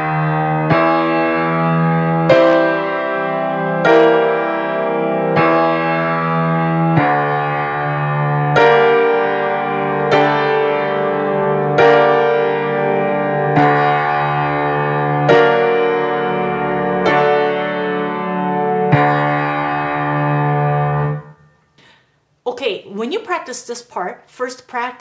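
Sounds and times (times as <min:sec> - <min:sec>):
piano chords: 0:00.0 - 0:21.8.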